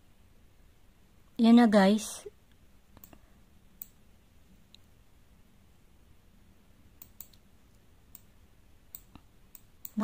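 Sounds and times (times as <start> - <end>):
faint sharp clicks: 2.5 - 3.2, 3.8 - 4.0, 7.0 - 8.3, 8.9 - 10.0.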